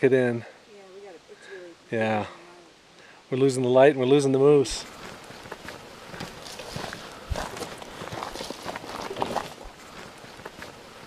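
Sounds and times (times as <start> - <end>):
footsteps crunching on dirt: 4.7 - 11.0.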